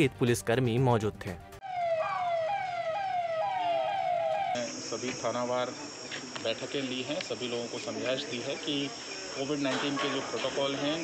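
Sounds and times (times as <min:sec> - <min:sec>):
police siren: 0:01.6 - 0:04.9.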